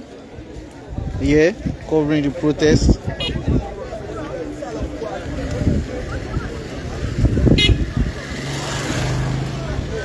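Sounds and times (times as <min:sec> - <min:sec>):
background voices: 0:00.0 - 0:10.0.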